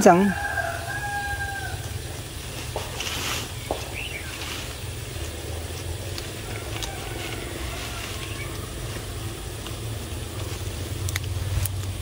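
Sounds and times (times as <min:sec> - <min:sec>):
rooster crowing: 0:00.0 - 0:02.2, 0:06.3 - 0:09.6
steady low rumble: 0:00.0 - 0:12.0.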